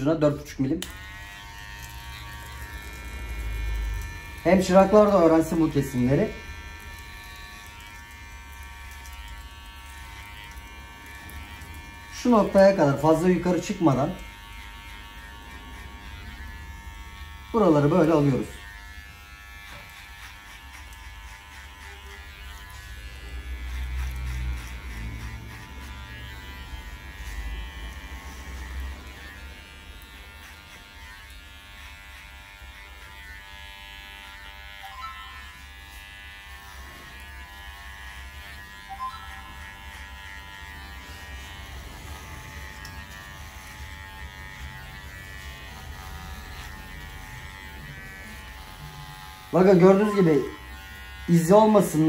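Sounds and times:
electric hair clipper buzzing: 0.0 - 52.0.

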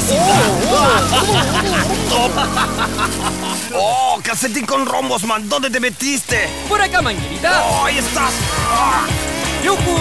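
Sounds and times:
garden hose spraying water: 0.0 - 10.0.

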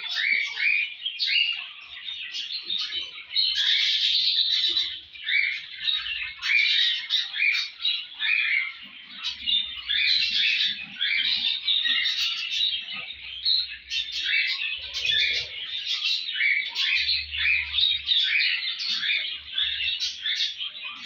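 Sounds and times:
small parrots chattering and chirping: 0.0 - 21.0.

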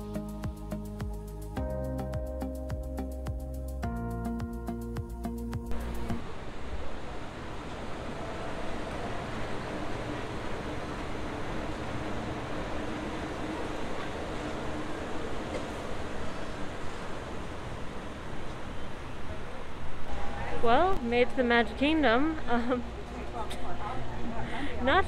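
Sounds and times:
monorail train running overhead: 5.7 - 25.0.

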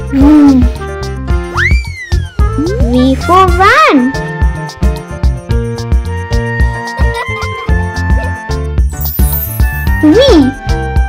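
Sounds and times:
children's song backing music: 0.0 - 1.5, 2.4 - 11.0
whistle-like sound effect: 1.5 - 2.3.

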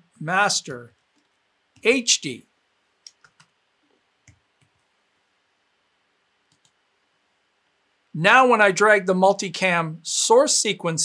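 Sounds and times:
computer mouse and keyboard clicks: 3.0 - 3.5, 6.5 - 6.8.

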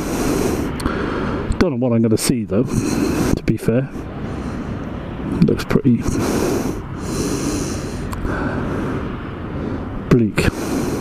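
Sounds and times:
breaths close to microphone: 0.0 - 1.6, 2.6 - 11.0
wind rumbling on microphone: 0.0 - 11.0.

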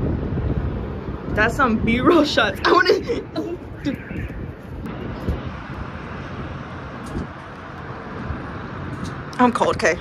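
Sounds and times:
wind on microphone: 0.0 - 9.3
city road traffic hum: 0.0 - 10.0.

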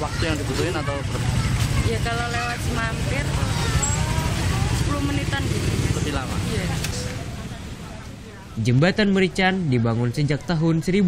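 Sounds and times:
motorcycle engine idling: 0.0 - 8.6
people talking: 0.0 - 11.0.

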